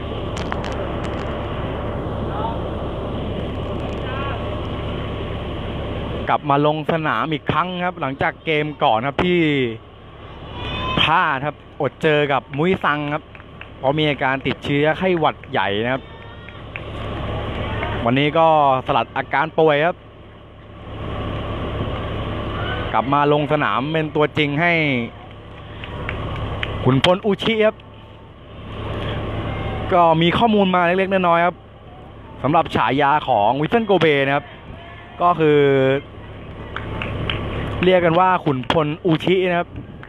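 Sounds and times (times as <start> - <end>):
bus engine idling: 0.0 - 40.0
faint distant voices: 22.4 - 40.0.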